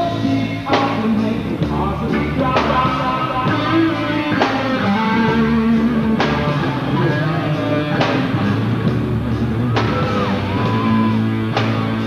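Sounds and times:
electric guitar: 0:00.0 - 0:12.0
reggae ska rock band playing: 0:00.0 - 0:12.0.

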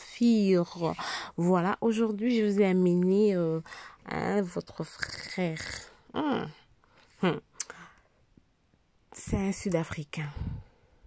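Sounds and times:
mouth click: 0:07.5 - 0:07.8.

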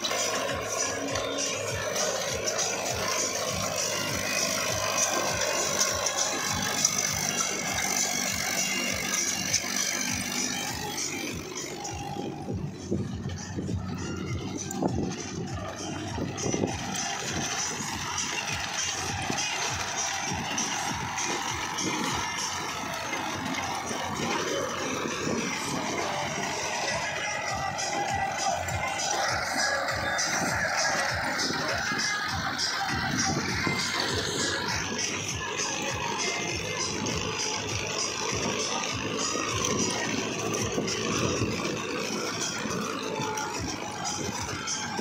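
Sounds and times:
tractor diesel engine under load: 0:00.0 - 0:45.0.

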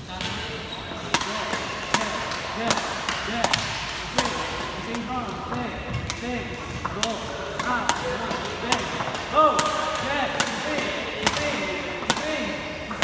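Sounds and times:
rackets hitting shuttlecocks: 0:00.1 - 0:13.0.

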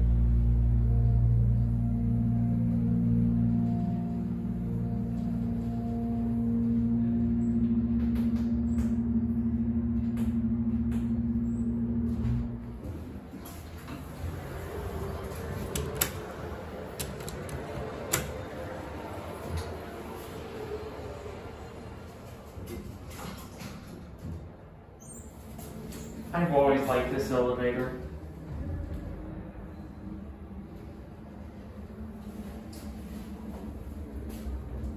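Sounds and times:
elevator humming: 0:00.0 - 0:34.9.

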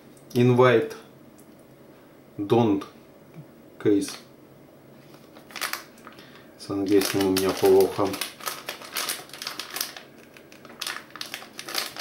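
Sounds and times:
plastic wrapper crinkling: 0:05.1 - 0:12.0.

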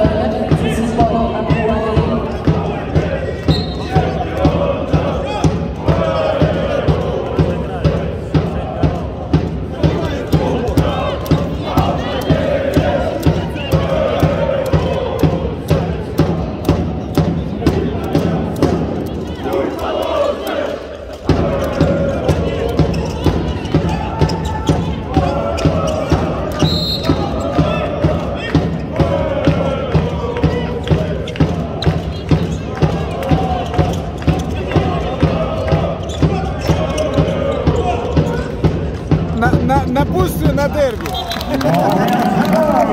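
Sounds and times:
thumping beat: 0:00.0 - 0:41.6
crowd chanting and singing: 0:00.0 - 0:42.9.

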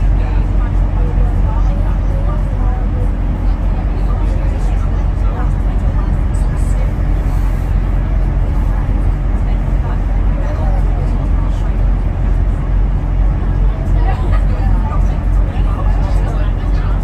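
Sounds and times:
bus rumbling through tunnel: 0:00.0 - 0:17.0
faint voices: 0:00.0 - 0:17.0.

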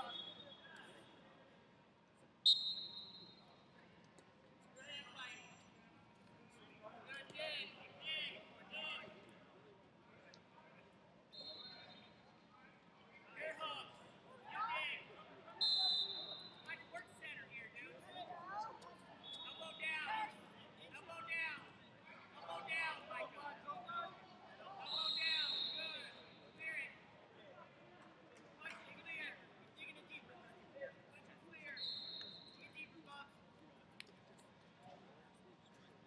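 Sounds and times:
distant voices in a hall: 0:00.0 - 0:36.0
high whistle-like tone: 0:02.5 - 0:03.4.

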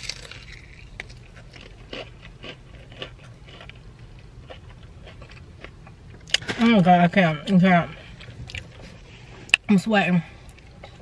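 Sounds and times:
crisp crunches of fried coating: 0:00.0 - 0:03.8
person chewing crispy chicken: 0:00.0 - 0:06.5.

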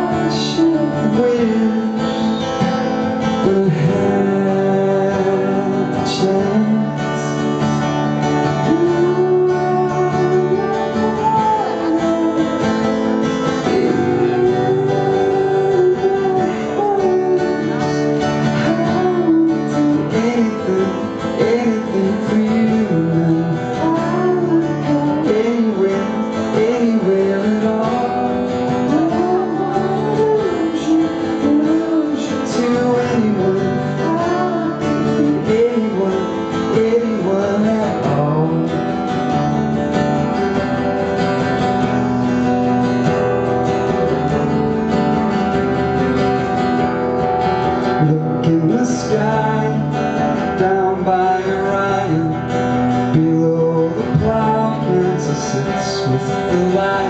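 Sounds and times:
man singing a slow song: 0:00.0 - 0:39.3, 0:47.8 - 0:57.0
strummed acoustic guitar: 0:00.0 - 0:57.0.

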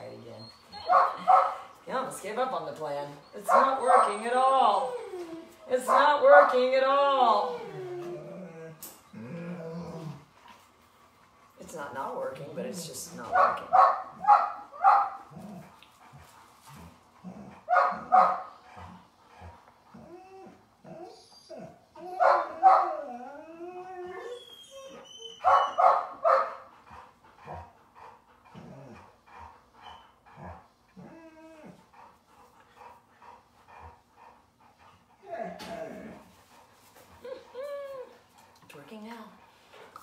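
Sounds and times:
puppy whining: 0:00.0 - 0:01.4, 0:03.2 - 0:10.4, 0:17.2 - 0:26.4, 0:28.5 - 0:32.0, 0:35.1 - 0:38.6
puppy barking: 0:00.9 - 0:01.6, 0:13.3 - 0:15.2, 0:17.7 - 0:18.5, 0:22.2 - 0:23.0, 0:25.4 - 0:26.6
puppy yipping: 0:24.2 - 0:26.5.

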